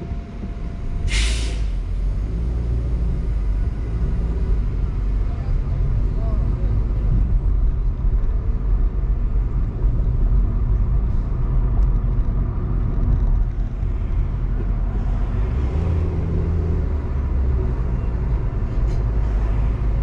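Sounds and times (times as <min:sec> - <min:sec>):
car engine rumble: 0:00.0 - 0:20.0
road noise: 0:00.0 - 0:20.0.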